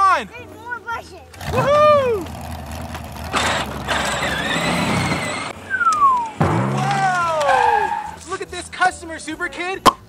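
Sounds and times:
light music: 0.0s - 2.2s, 5.6s - 10.0s
whistle sliding down in pitch: 5.7s - 6.4s.

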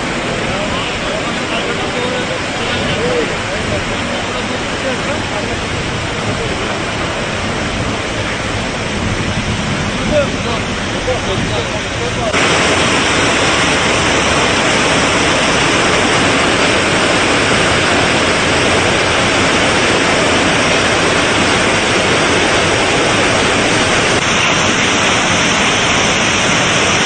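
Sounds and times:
water jetting from burst pipe: 0.0s - 27.0s.

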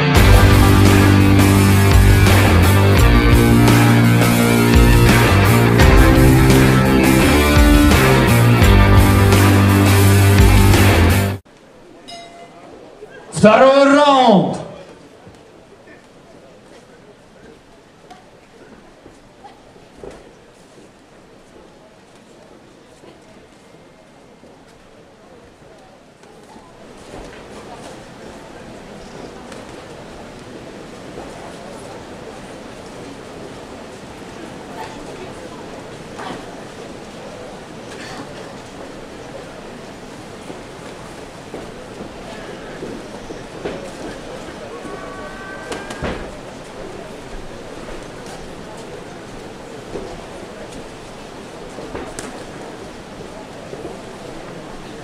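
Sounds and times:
murmur of crowd voices: 0.0s - 55.0s
short steady tone: 12.1s - 12.7s.

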